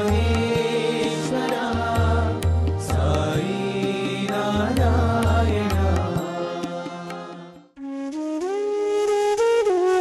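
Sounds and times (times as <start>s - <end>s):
devotional chant music: 0.0s - 8.0s.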